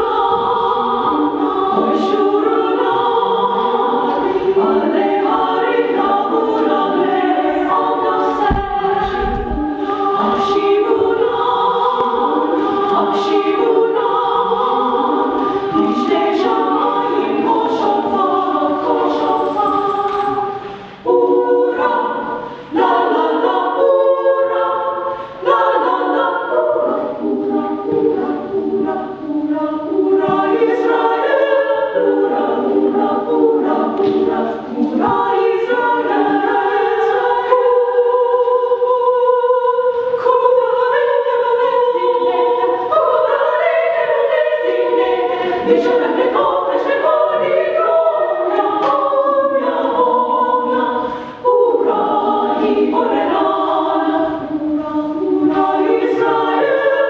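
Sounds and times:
young voices singing opera chorus: 0.0s - 57.0s.

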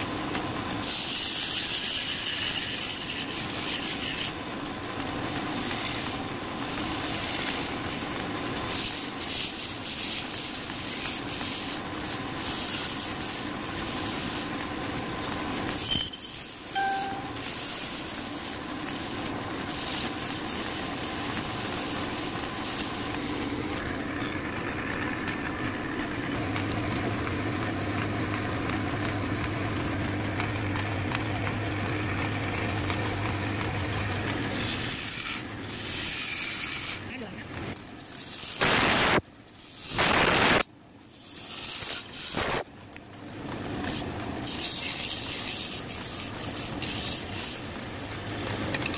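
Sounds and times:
wood lathe hissing: 0.6s - 23.7s
low motor hum: 22.2s - 34.7s.

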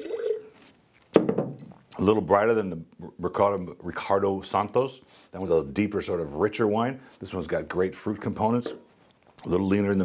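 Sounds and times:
jug knocked onto table: 1.2s - 1.7s.

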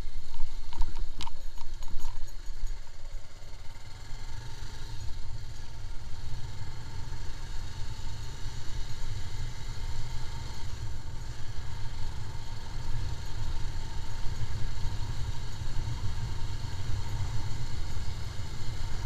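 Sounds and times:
motorcycle engine rumble: 0.0s - 19.0s.

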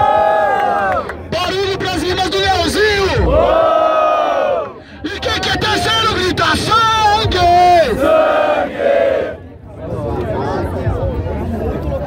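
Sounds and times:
crowd of men shouting: 2.4s - 9.4s.

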